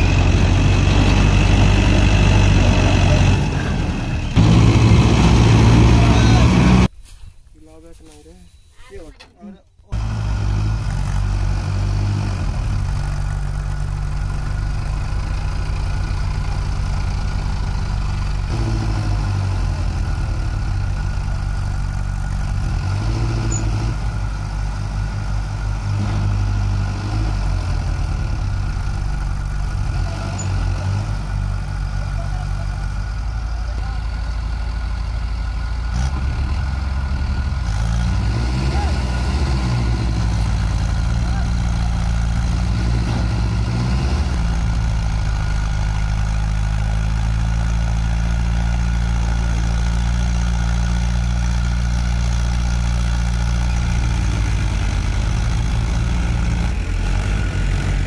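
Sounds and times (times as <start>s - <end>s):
diesel tractor engines running: 0.0s - 7.0s, 9.0s - 58.0s.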